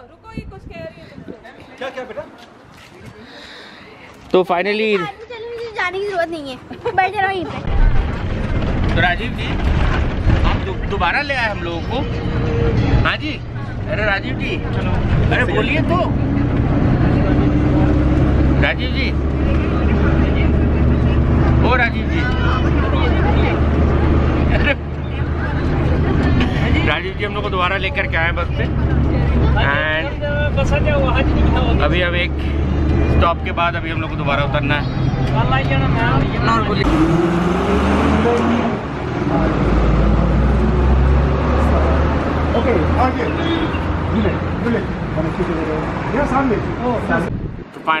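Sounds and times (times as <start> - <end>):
bus engine drone: 7.5 - 47.8.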